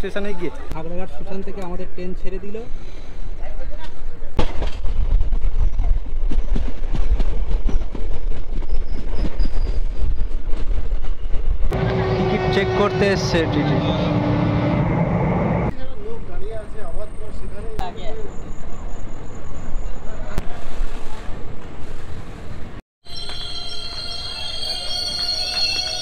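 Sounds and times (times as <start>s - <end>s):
train low rumble: 2.5s - 26.0s.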